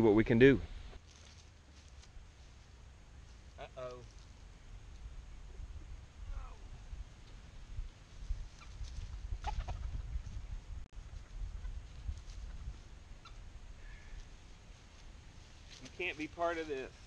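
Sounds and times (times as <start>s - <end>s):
chickens clucking: 9.4s - 10.1s.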